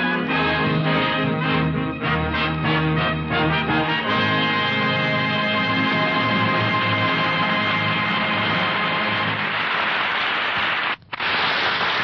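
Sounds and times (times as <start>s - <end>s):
orchestra holding a chord: 0.1s - 9.4s.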